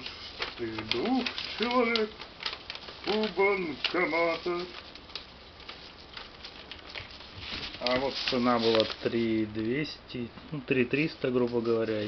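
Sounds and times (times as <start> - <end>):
low steady hum: 0.0 - 12.0
soft handling rustling: 0.0 - 12.0.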